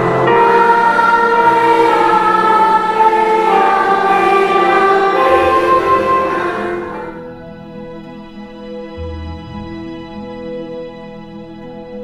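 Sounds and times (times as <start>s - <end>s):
congregation singing a hymn: 0.0s - 8.6s.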